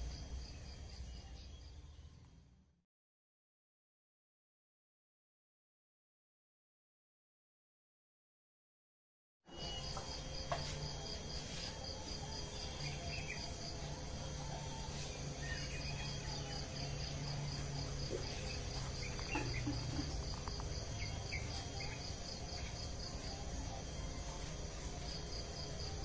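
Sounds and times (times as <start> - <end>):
insects chirring: 0.0 - 2.2, 9.5 - 26.0
low steady hum: 9.5 - 26.0
bird chirps: 18.2 - 22.0.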